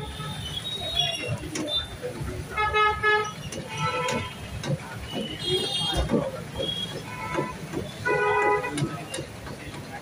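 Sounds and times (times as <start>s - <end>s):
vehicle horn honking: 6.6s - 8.8s.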